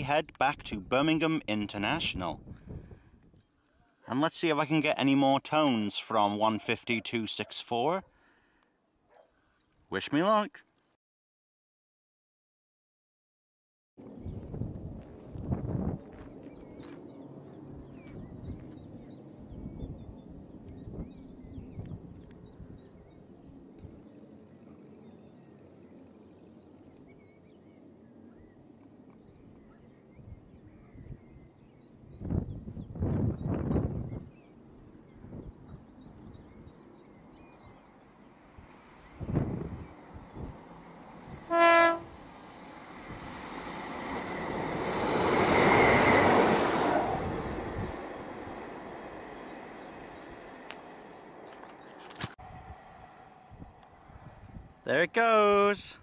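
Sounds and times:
train passing: 35.6 - 55.2
train horn blast: 41.3 - 42.2.

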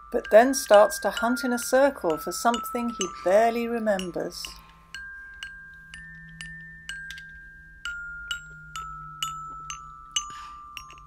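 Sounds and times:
high chime notes: 0.0 - 11.0.

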